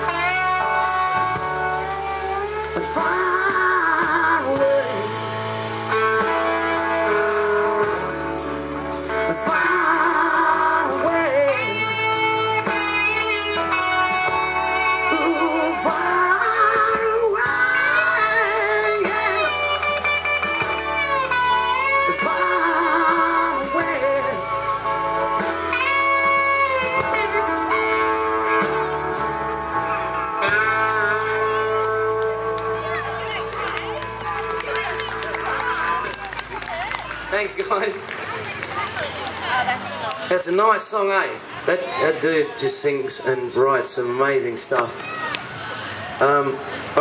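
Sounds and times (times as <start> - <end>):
acoustic guitar chords: 0.0 - 33.4
band playing slow country ballad: 0.0 - 36.5
electric guitar lead with bent notes: 0.0 - 36.6
low bass notes: 0.0 - 36.6.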